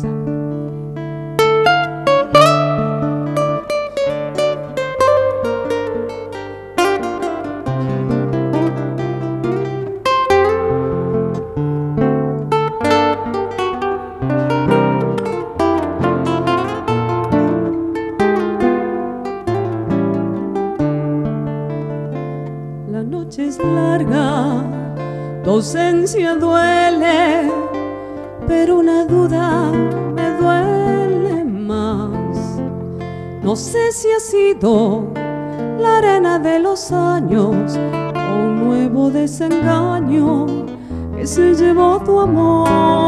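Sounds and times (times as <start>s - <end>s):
nylon-string acoustic guitars: 0.0s - 43.0s.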